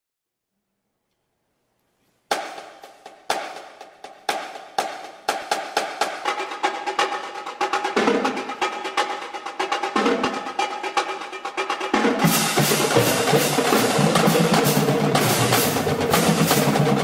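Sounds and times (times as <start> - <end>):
marching drumline playing: 2.3 - 17.0.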